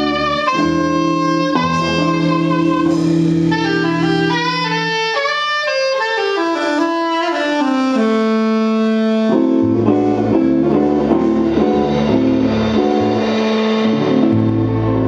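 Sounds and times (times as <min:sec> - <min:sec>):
low bass notes: 0:00.0 - 0:05.0, 0:08.7 - 0:15.0
jazz soprano saxophone melody: 0:00.0 - 0:13.3
guitar chords: 0:00.0 - 0:15.0.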